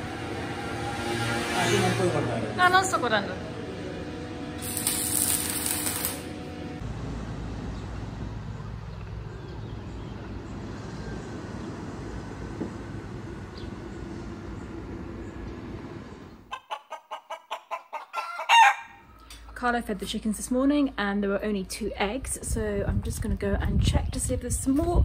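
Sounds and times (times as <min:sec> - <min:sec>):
welding arc crackling: 0:04.6 - 0:06.5
chicken squawk: 0:16.5 - 0:19.2
chickens clucking: 0:16.5 - 0:19.5.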